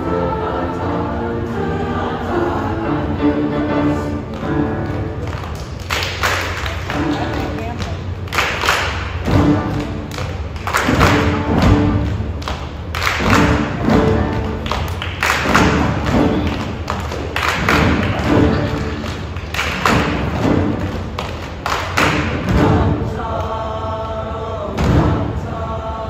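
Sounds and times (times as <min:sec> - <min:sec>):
chorus singing: 0:00.0 - 0:05.2, 0:17.5 - 0:20.9, 0:22.0 - 0:26.0
piano: 0:00.0 - 0:26.0
rhythmic loud thumps: 0:06.6 - 0:26.0.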